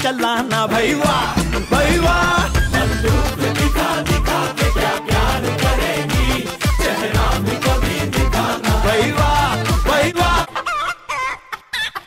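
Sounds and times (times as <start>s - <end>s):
music with a beat: 0.0s - 10.5s.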